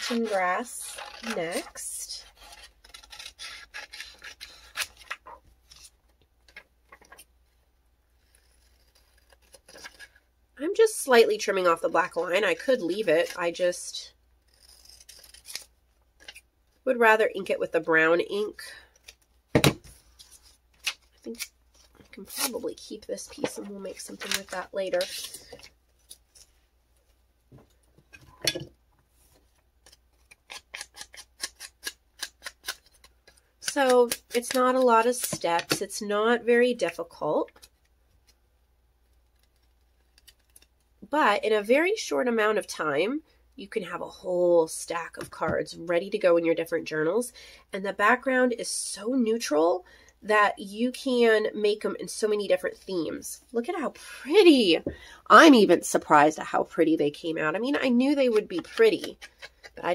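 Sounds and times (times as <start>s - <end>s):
scissors snipping paper: 0.0s - 5.2s, 14.5s - 16.4s, 29.8s - 35.9s, 58.2s - 59.8s.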